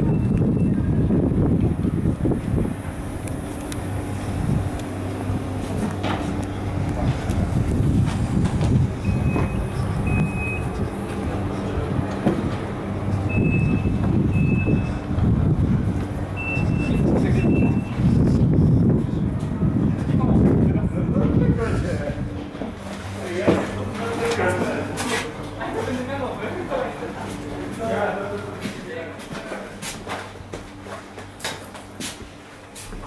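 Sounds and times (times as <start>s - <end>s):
train electrical hum: 0.0s - 33.0s.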